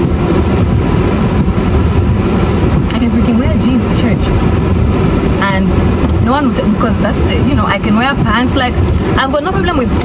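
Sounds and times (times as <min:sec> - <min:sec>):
car cabin road rumble: 0:00.0 - 0:10.0
woman speaking: 0:02.9 - 0:04.4, 0:05.4 - 0:10.0.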